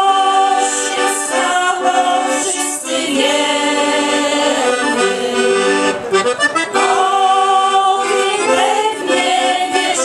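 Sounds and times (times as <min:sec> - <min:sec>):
accordion playing: 0:00.0 - 0:10.0
women's choir singing: 0:00.0 - 0:10.0.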